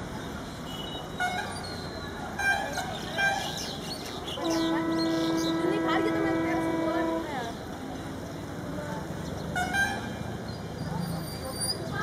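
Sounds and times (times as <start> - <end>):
distant diesel locomotive rumble: 0.0 - 11.9.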